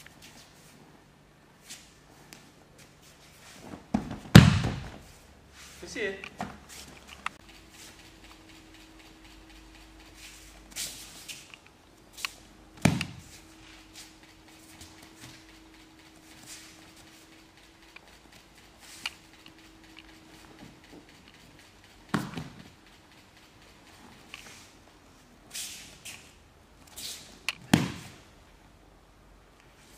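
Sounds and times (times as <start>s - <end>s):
slaps and shuffling feet on mats: 0.0s - 1.0s, 1.6s - 28.3s
body thumping onto mats: 3.6s - 5.1s.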